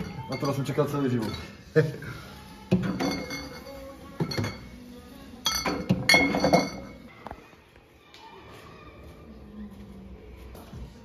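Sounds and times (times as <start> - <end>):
glass bottles clinking: 0.0 - 1.7, 2.7 - 4.8, 5.4 - 7.1.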